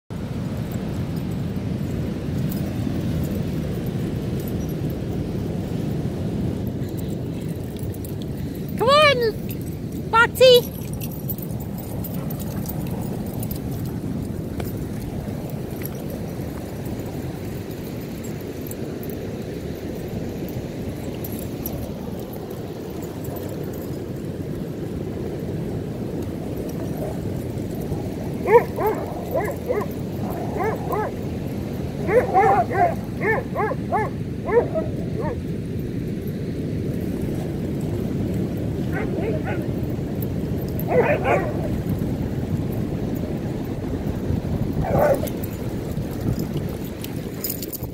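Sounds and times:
dog barking: 28.4s - 31.2s, 32.0s - 35.4s, 38.9s - 39.7s, 40.9s - 41.7s, 44.8s - 45.4s.

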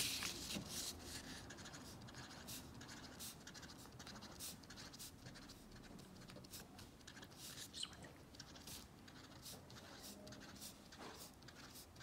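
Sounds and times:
paper sheet rustling: 0.0s - 1.2s
marker dabbing on paper: 0.0s - 12.0s.

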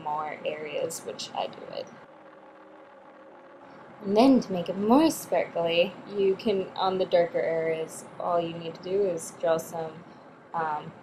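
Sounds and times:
faint room hum: 0.0s - 11.0s
low held tones: 0.0s - 11.0s.

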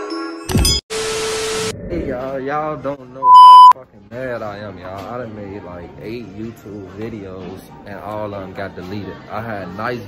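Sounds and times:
loud electronic beep: 3.2s - 3.8s.

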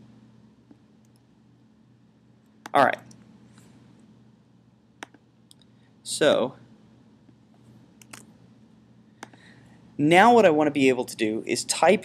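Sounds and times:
faint low hum: 0.0s - 12.0s
computer mouse clicking: 5.0s - 5.6s, 8.0s - 8.3s, 9.2s - 9.4s.

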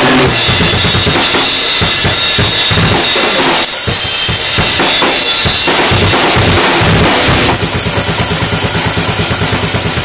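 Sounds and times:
cymbals washing: 0.0s - 10.0s
fast low drum strokes: 0.0s - 10.0s.

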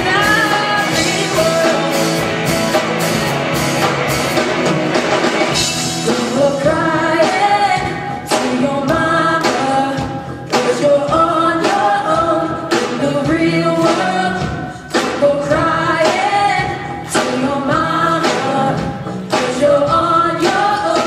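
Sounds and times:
bass guitar: 0.0s - 21.0s
drum kit beat: 0.0s - 21.0s
electric guitars: 0.0s - 21.0s
voices singing together: 6.0s - 21.0s.

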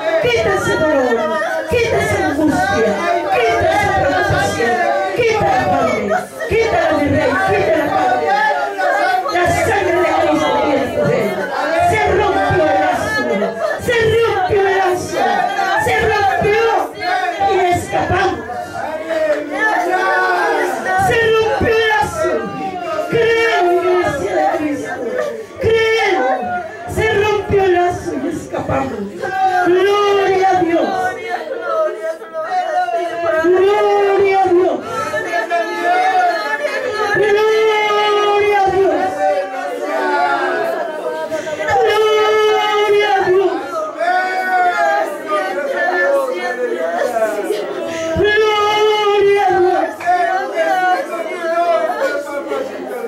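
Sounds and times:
woman praying into a microphone: 0.0s - 44.2s, 45.3s - 53.0s.

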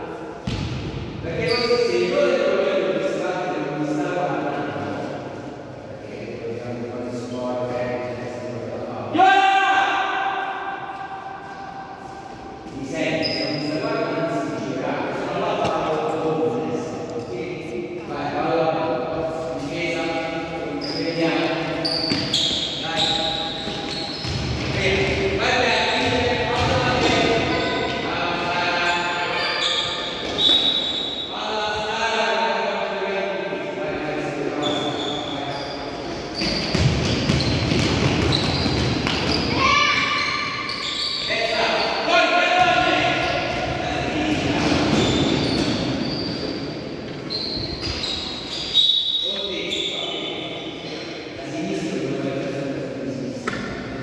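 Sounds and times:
voices calling out echoing: 0.0s - 54.0s
basketball bouncing on gym floor: 0.4s - 1.1s, 22.0s - 22.6s, 23.5s - 25.4s, 26.0s - 27.5s, 36.4s - 39.6s.

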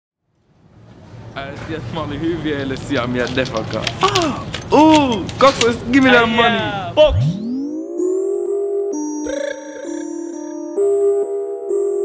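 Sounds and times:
synthesizer melody of held notes: 7.0s - 12.0s.

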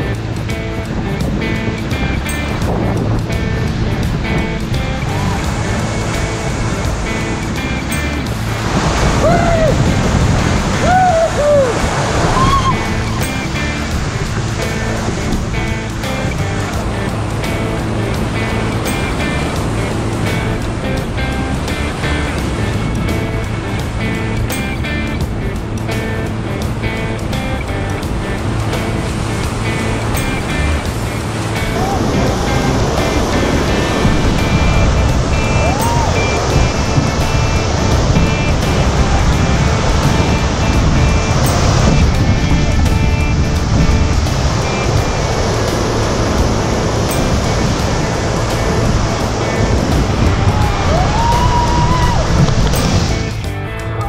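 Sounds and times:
instrumental music: 0.0s - 54.0s
rushing whitewater: 0.0s - 54.0s.

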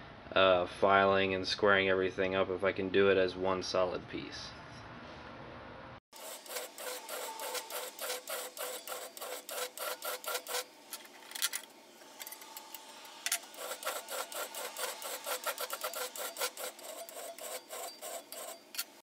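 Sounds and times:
hand file on steel plate: 6.2s - 10.7s, 13.3s - 18.8s.

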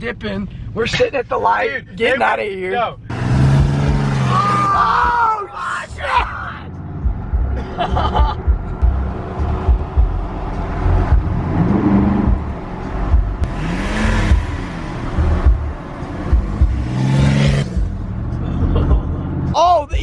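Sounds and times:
truck engine and road rumble: 0.0s - 20.0s
low thumps: 6.8s - 19.1s.

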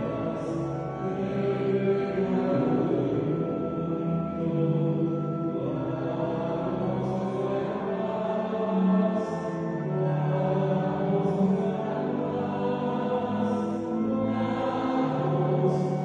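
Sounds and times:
slow devotional chant: 0.0s - 16.0s.

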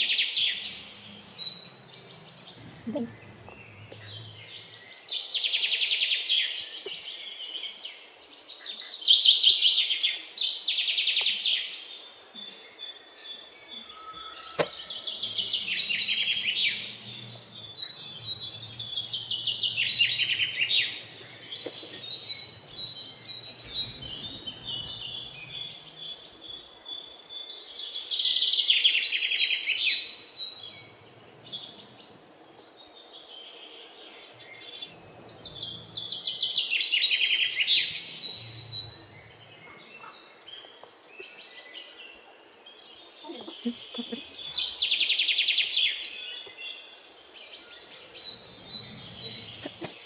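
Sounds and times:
birds twittering: 0.0s - 50.0s.

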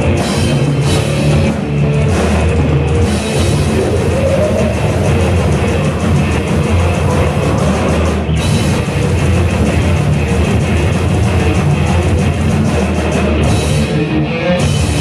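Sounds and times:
bass guitar: 0.0s - 15.0s
distorted electric guitars: 0.0s - 15.0s
drum kit: 0.0s - 15.0s.

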